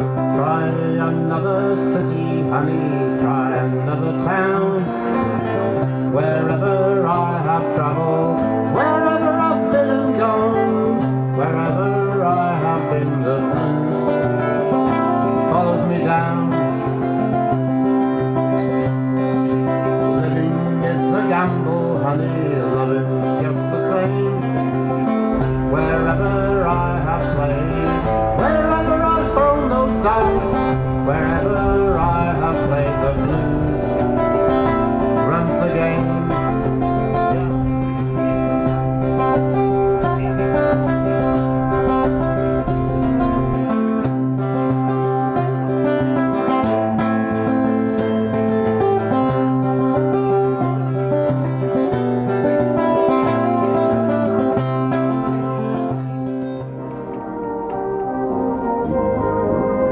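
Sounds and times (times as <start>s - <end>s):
acoustic guitars playing folk-blues: 0.0s - 59.9s
low held bass note: 25.3s - 44.2s, 58.5s - 59.9s.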